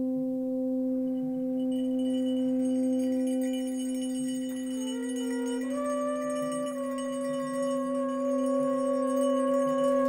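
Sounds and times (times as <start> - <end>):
low drone: 0.2 - 10.0
high bell-like ringing tones: 1.3 - 10.0
trumpet holding long note: 4.8 - 10.0.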